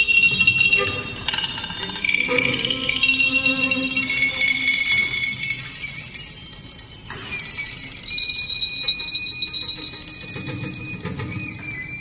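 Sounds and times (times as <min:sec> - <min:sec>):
bells ringing: 0:00.0 - 0:12.0.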